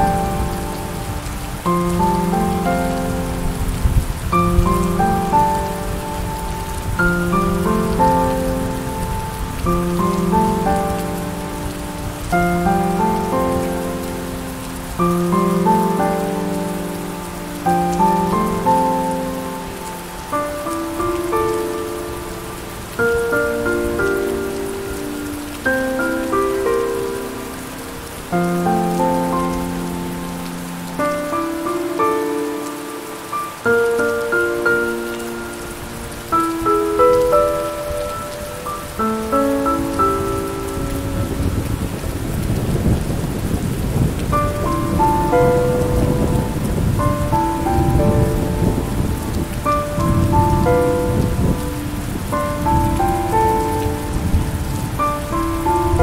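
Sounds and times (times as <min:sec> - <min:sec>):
slow soft piano music: 0:00.0 - 0:56.0
steady rain: 0:00.0 - 0:56.0
low thunder rumbling: 0:40.0 - 0:56.0.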